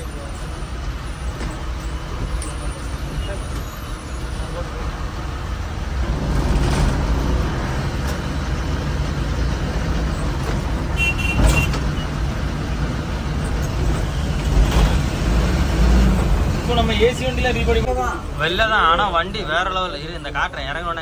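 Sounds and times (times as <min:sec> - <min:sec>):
bus diesel engine rumbling: 0:00.0 - 0:21.0.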